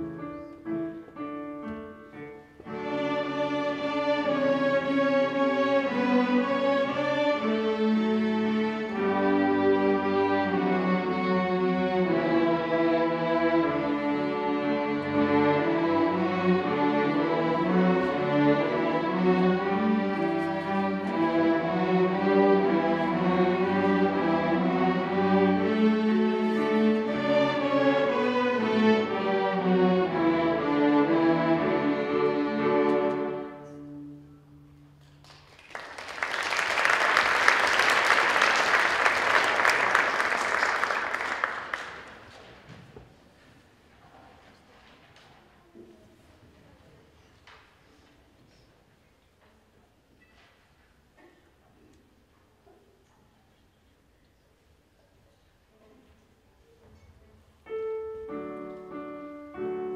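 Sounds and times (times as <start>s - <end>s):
string orchestra playing: 0.0s - 34.9s, 57.8s - 59.9s.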